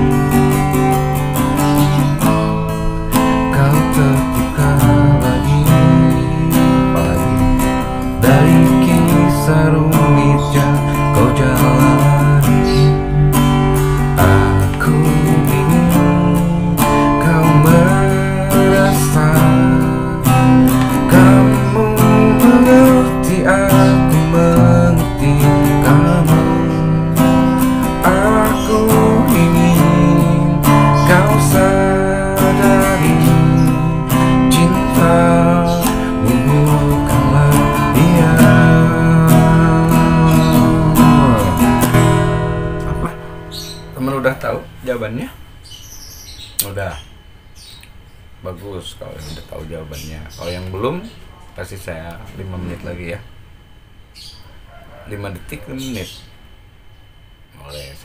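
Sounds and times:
acoustic guitar strumming: 0.0 - 57.5
man singing: 3.4 - 13.2, 14.1 - 26.9, 27.9 - 42.1.

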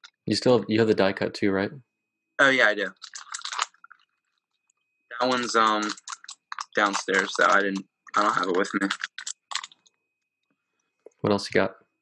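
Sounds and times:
faint high whine: 0.3 - 1.8, 2.4 - 3.9, 4.8 - 10.2, 11.1 - 12.0.

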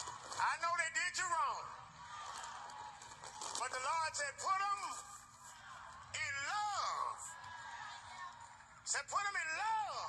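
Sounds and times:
man preaching in wailing tone: 6.2 - 7.3, 8.9 - 10.0.

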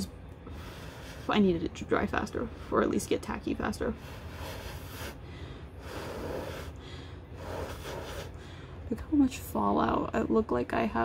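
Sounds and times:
person blowing breaths: 4.0 - 8.8.

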